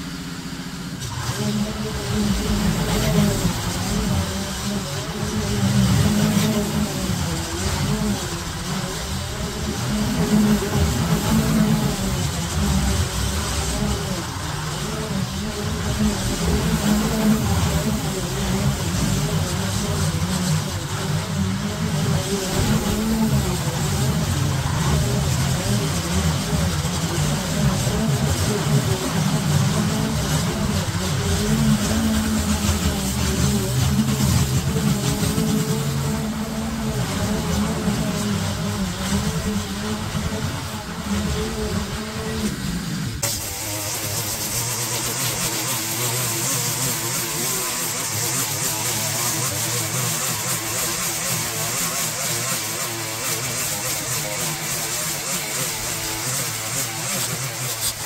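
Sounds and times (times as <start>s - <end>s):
hissy machine noise: 0.0s - 58.0s
small petrol engine running: 0.0s - 58.0s.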